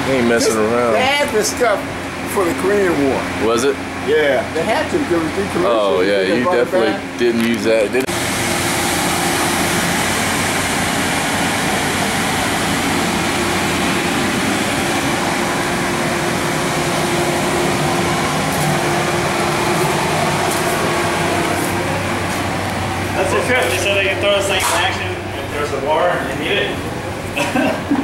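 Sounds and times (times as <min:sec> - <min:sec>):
constant low hum: 0:00.0 - 0:28.0
steady rushing noise: 0:08.1 - 0:26.8.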